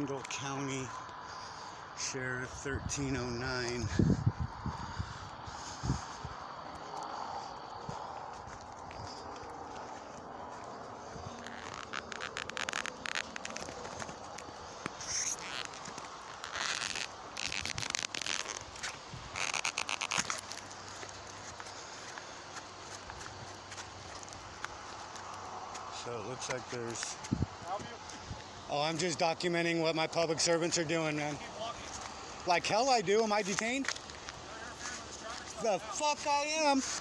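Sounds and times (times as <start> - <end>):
low steady background noise: 0.0 - 37.0
footsteps: 3.6 - 29.3, 30.7 - 37.0
phone handling crackle: 11.4 - 21.5.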